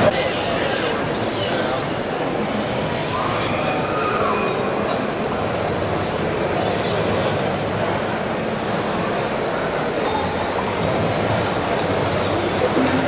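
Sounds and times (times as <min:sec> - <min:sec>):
busy exhibition hall background: 0:00.0 - 0:13.0.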